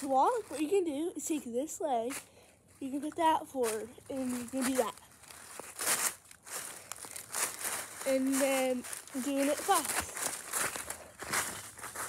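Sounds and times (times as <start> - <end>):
dry leaves crunching: 0.0 - 1.1, 2.9 - 12.0.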